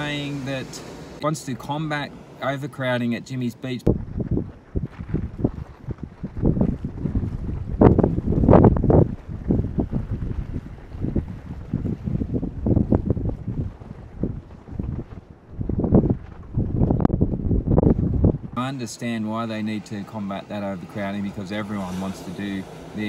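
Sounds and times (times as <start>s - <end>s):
wind buffeting microphone: 3.8s - 23.0s.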